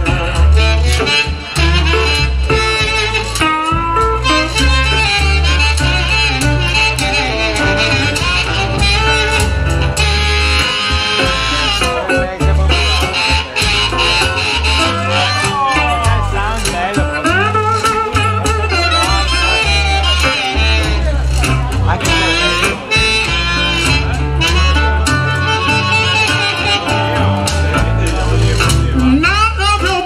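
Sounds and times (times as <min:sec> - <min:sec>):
amplified harmonica: 0:00.0 - 0:30.0
guitar: 0:00.0 - 0:30.0
upright bass plucking: 0:00.0 - 0:30.0
washboard rhythm: 0:00.0 - 0:30.0.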